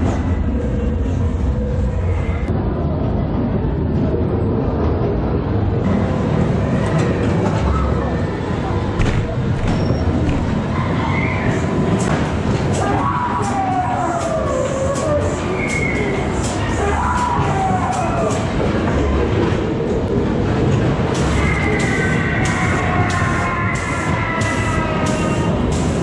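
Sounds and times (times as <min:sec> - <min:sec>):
ride car rumbling on track: 0:00.0 - 0:26.0.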